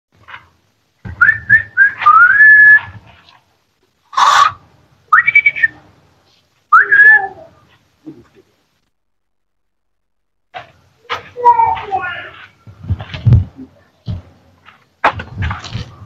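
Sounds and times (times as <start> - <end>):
man whistling with hands: 1.2 - 3.0, 5.1 - 5.8, 6.7 - 7.3.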